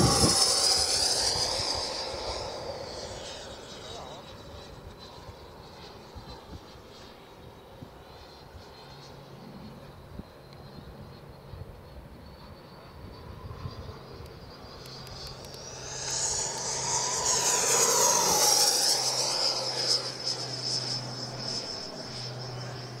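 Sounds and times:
ducted fan jet whining past: 0.0s - 23.0s.

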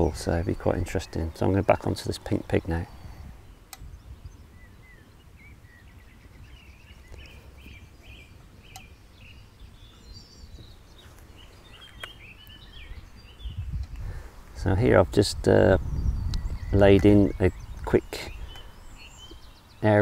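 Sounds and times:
small birds chirping: 0.0s - 20.0s
faint clicks: 8.7s - 8.9s, 13.8s - 14.6s.

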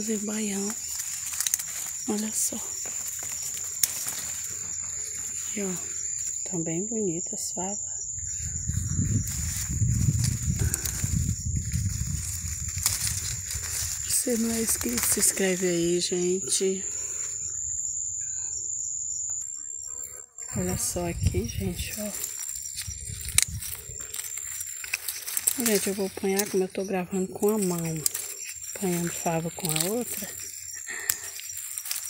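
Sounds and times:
rustling of leaves: 0.0s - 6.6s, 8.0s - 17.4s, 20.5s - 32.0s
faint insect chirps: 0.0s - 32.0s
high-pitched insect drone: 0.0s - 32.0s
low rumble on microphone: 8.0s - 14.2s.

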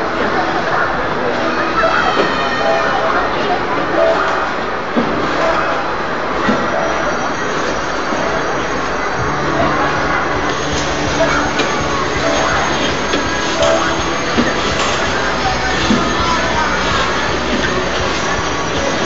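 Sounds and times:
chatter: 0.0s - 19.0s
steady low hum: 3.1s - 19.0s
music: 7.8s - 19.0s.

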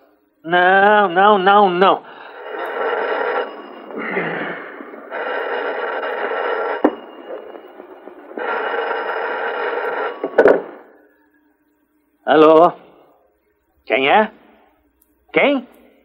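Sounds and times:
telephone bell ringing: 0.9s - 11.4s.

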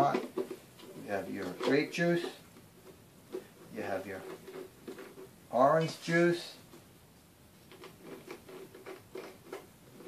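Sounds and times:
plastic jug clicking and rustling: 0.0s - 5.4s.

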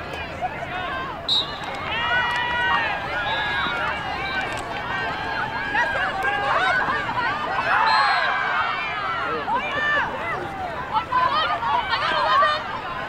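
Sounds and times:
people shouting and calling: 0.3s - 13.0s.

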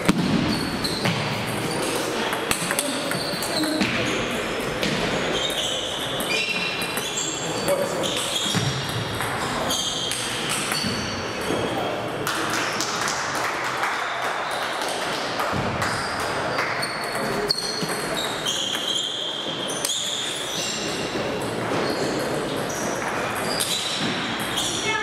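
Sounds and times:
murmur of voices: 1.2s - 15.6s.

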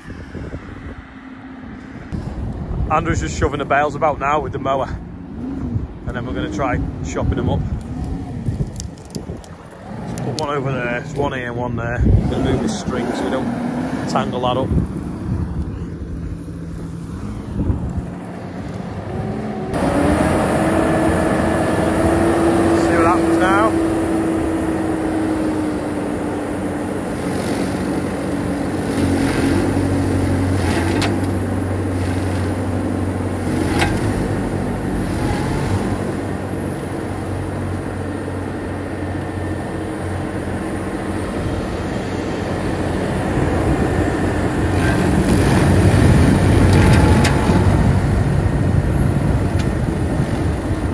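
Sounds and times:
tractor and rotary mower hum: 0.0s - 50.9s.

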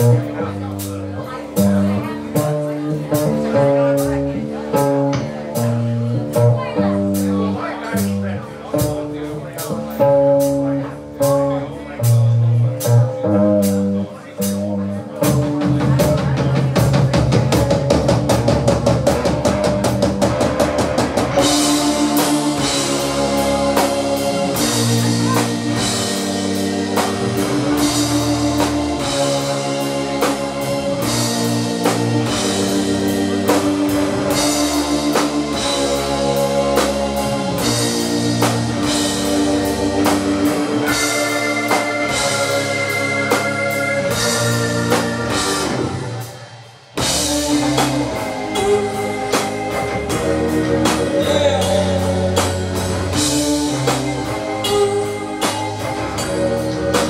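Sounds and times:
guitar and bass chords: 0.0s - 57.0s
live rock band playing: 0.0s - 57.0s.

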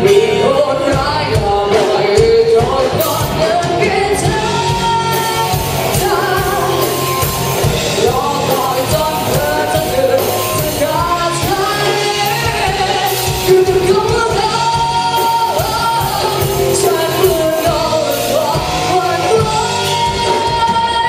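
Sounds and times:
bass guitar: 0.0s - 21.0s
drums: 0.0s - 21.0s
electric guitar: 0.0s - 21.0s
person singing: 0.0s - 21.0s.

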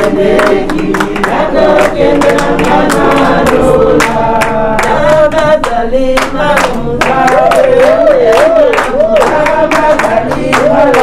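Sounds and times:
group of voices singing: 0.0s - 11.0s
hand claps: 0.0s - 11.0s.

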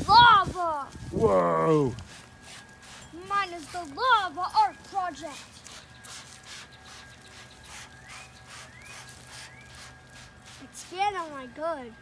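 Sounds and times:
spray bottle squirting: 2.0s - 4.3s, 5.1s - 11.4s.

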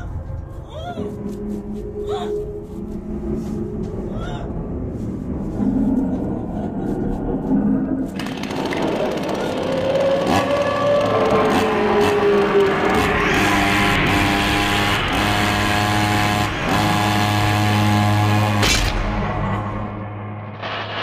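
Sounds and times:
pulsing low drone: 0.0s - 21.0s
harsh mechanical buzz: 8.0s - 21.0s.

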